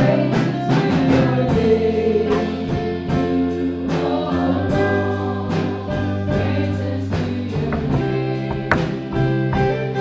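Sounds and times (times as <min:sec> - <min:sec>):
drums: 0:00.0 - 0:10.0
keyboard: 0:00.0 - 0:10.0.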